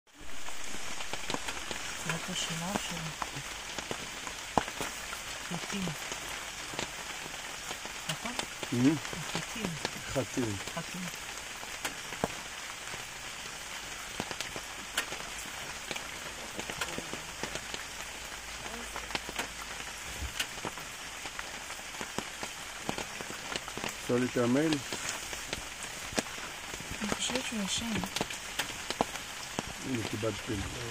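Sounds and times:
raindrops ticking close by: 0.1 - 30.9
steady rain falling: 0.1 - 30.9.

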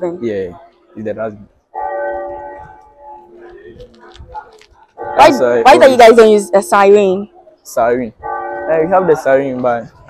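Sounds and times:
school bell ringing: 1.7 - 3.4, 5.0 - 7.2, 8.2 - 9.4.

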